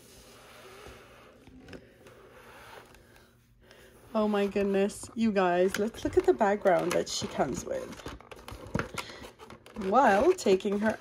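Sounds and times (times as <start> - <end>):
handling cardboard and plastic packaging: 0.0 - 11.0.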